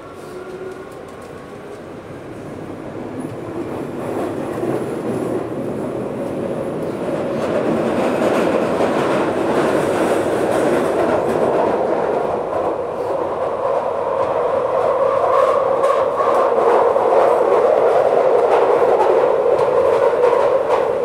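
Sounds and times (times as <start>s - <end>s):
train rumbling through tunnel: 0.0s - 21.0s.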